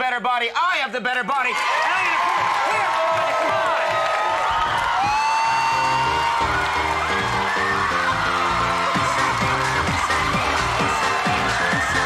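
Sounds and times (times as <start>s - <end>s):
audience whooping and screaming: 1.5s - 12.0s
dance music with steady beat: 2.4s - 12.0s.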